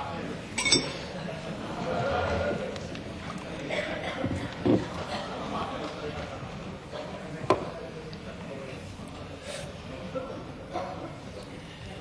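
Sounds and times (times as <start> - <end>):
large hall background: 0.0 - 12.0
glassware clinking: 0.6 - 1.1.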